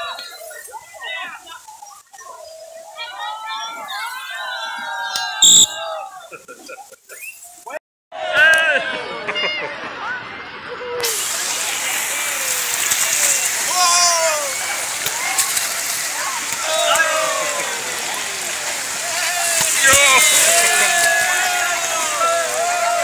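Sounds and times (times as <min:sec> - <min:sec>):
swimmers calling out and shrieking: 0:11.1 - 0:23.0.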